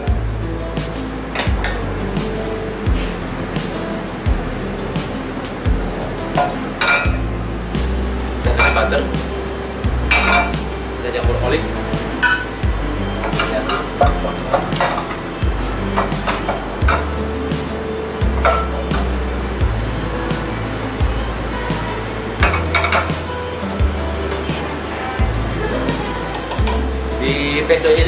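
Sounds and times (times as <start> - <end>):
background music with low bass: 0.0 - 28.0
pan and utensils clinking: 5.0 - 7.2, 10.1 - 10.7, 13.2 - 15.3, 21.8 - 23.6, 24.3 - 28.0.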